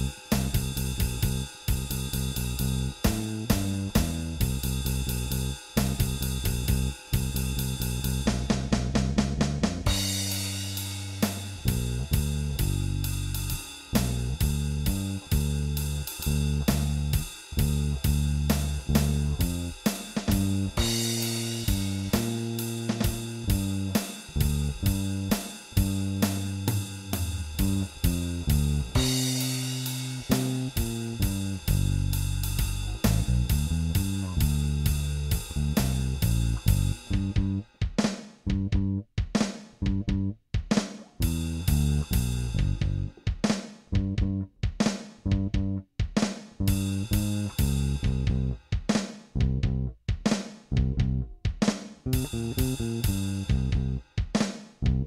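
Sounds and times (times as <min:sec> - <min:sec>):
walking bass line on electric bass: 0:00.0 - 0:37.7, 0:38.5 - 0:39.1, 0:39.8 - 0:40.4, 0:41.2 - 0:43.2, 0:43.9 - 0:44.5, 0:45.3 - 0:45.9, 0:46.6 - 0:48.6, 0:49.4 - 0:50.0, 0:50.7 - 0:51.3, 0:52.1 - 0:54.0
drum kit on hi-hat and snare: 0:00.0 - 0:55.0
cymbal crashes: 0:09.9 - 0:19.1, 0:19.8 - 0:37.1.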